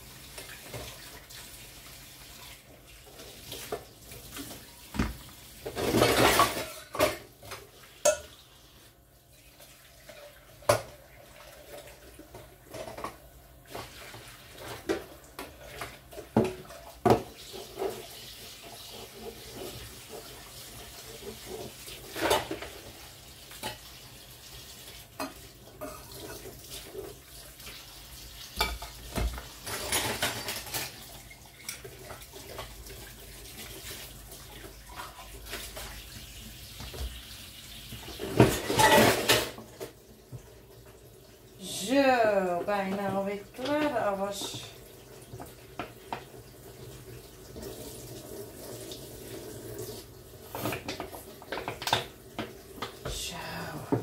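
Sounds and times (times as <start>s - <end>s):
tap water running: 0.0s - 54.0s
dishes clinking and knocking: 5.0s - 8.4s, 28.6s - 31.8s, 38.2s - 39.8s.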